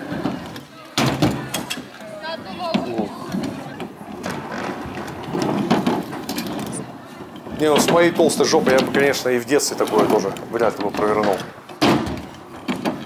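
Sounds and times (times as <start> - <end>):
scooter clattering: 0.0 - 13.0
scooter wheels rolling: 0.0 - 13.0
children's voices: 1.4 - 4.0.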